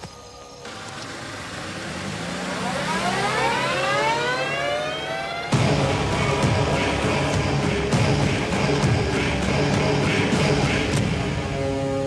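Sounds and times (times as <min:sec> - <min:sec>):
siren-like wail rising in pitch: 0:00.6 - 0:07.9.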